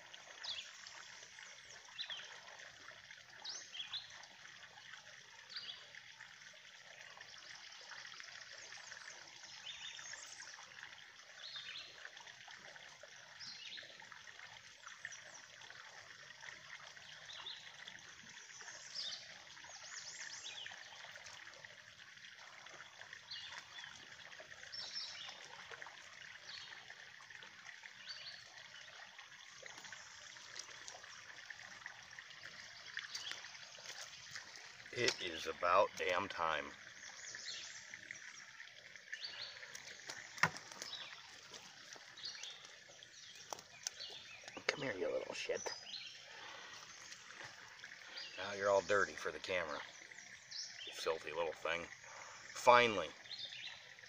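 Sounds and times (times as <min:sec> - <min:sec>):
water trickling into pond: 0:00.0 - 0:54.0.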